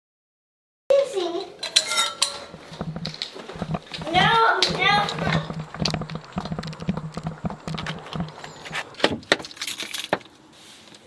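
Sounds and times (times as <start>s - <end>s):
keys jingling: 7.3s - 10.2s.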